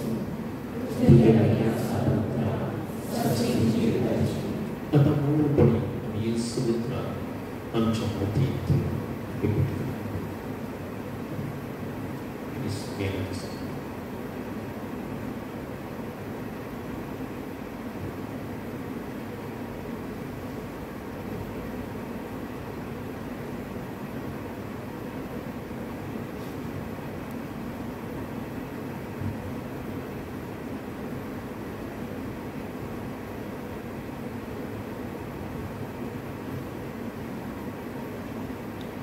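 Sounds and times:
room tone hiss and hum: 0.0s - 39.0s.

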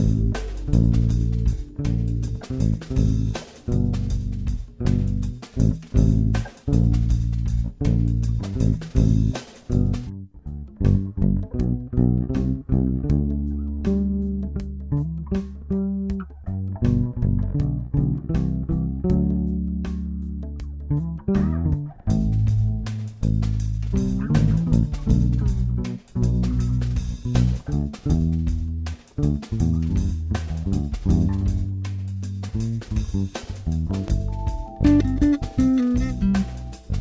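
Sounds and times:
light percussion ticking: 0.0s - 9.0s, 31.0s - 37.0s
electric bass guitar groove: 0.0s - 37.0s.

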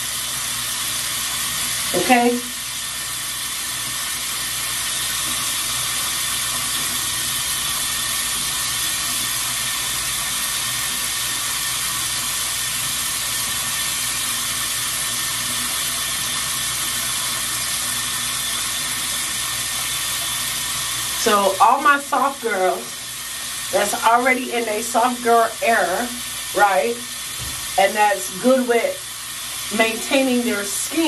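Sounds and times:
water running from tap: 0.0s - 31.0s.

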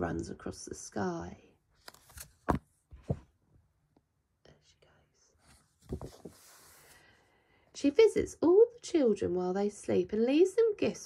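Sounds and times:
faint breaths: 6.3s - 7.8s.

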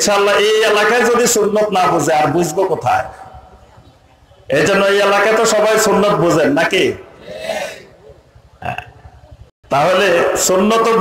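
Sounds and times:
man giving sermon: 0.0s - 3.3s, 4.5s - 7.2s, 9.7s - 11.0s
throaty vocal sound: 7.2s - 9.2s.

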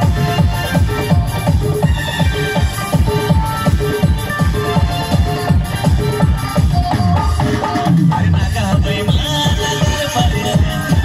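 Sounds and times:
fast electronic drum beat: 0.0s - 11.0s
keyboard melody: 0.0s - 11.0s.

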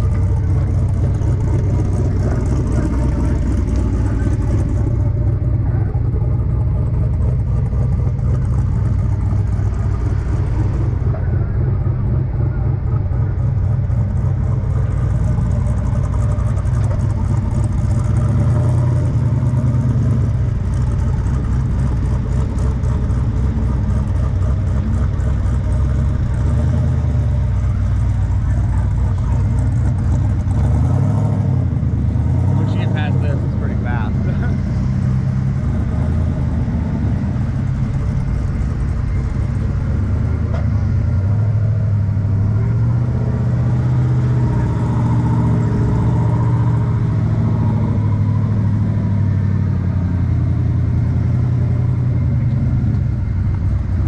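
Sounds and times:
engine running at low revs: 0.0s - 54.0s
voices: 32.5s - 34.6s.

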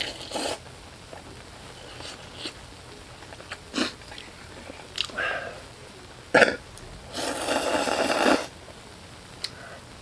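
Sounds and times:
person slurping noodles: 7.1s - 8.5s.

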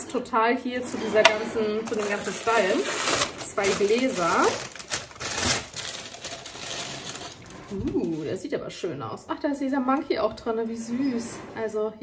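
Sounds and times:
paper wrapping crinkling: 1.8s - 8.3s.

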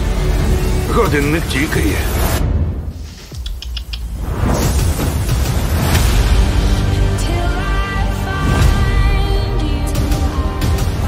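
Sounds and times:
trailer music: 0.0s - 11.0s.

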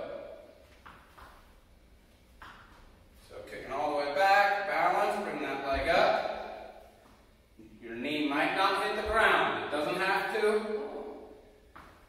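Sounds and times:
man speaking: 3.2s - 6.4s, 7.6s - 11.2s.

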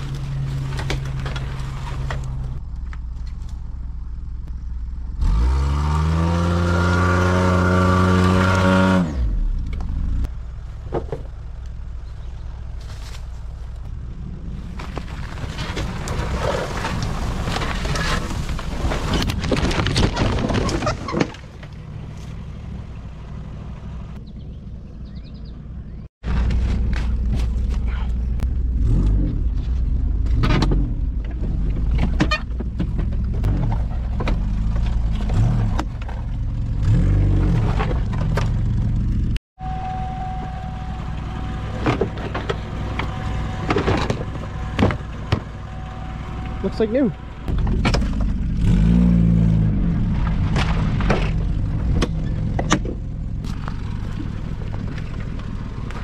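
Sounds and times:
brush crackling and scraping: 0.0s - 3.7s, 12.7s - 13.9s, 14.6s - 22.5s
car engine revving: 34.2s - 56.0s.

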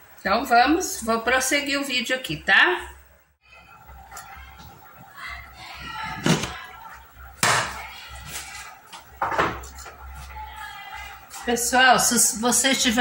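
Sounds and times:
kitchen items knocking and clattering: 6.0s - 6.6s, 7.4s - 7.8s, 8.9s - 10.0s.

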